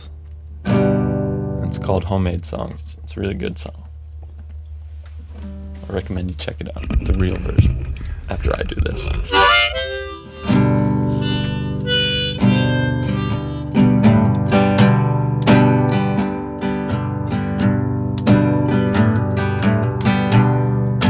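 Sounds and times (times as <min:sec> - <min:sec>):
acoustic guitar strumming: 0:00.6 - 0:01.6, 0:09.0 - 0:21.0
harmonica playing: 0:09.2 - 0:14.2.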